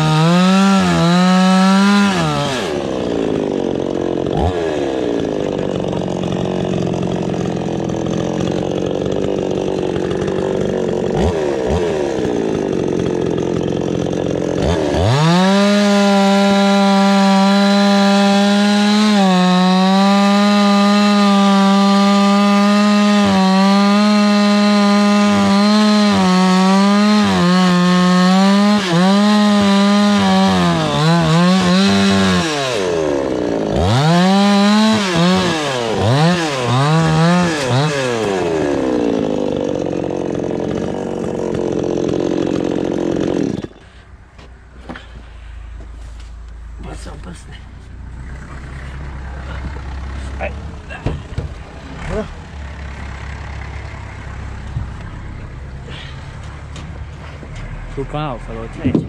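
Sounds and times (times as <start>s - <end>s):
chainsaw running at high revs: 0.0s - 43.9s, 48.3s - 56.7s
low engine rumble: 43.9s - 59.0s
knocks: 50.9s - 51.6s.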